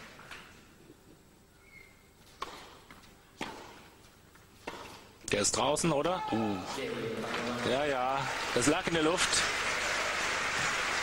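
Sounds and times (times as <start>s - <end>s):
tennis ball hit by racket: 2.3s - 4.0s, 4.6s - 5.1s.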